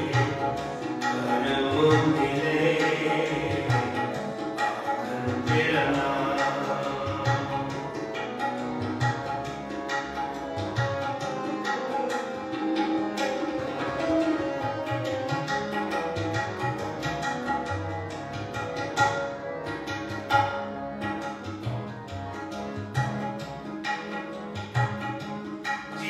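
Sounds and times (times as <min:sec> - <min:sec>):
harmonium chords: 0:00.0 - 0:26.0
tabla strokes: 0:00.0 - 0:26.0.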